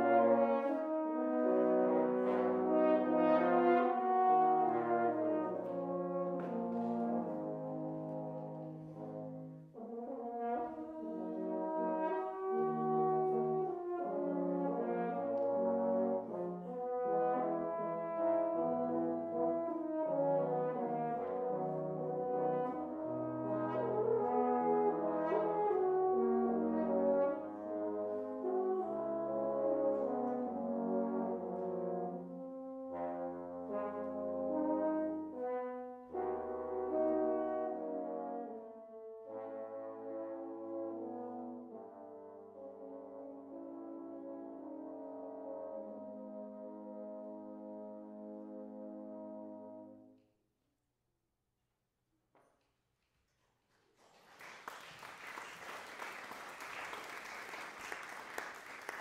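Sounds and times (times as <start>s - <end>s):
french horns playing chords: 0.0s - 50.2s.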